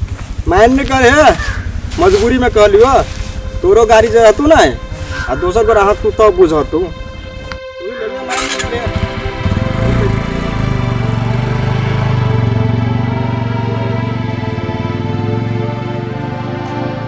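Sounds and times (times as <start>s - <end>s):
motorcycle engine pulling away: 0.0s - 7.5s, 8.3s - 17.0s
background music: 0.6s - 17.0s.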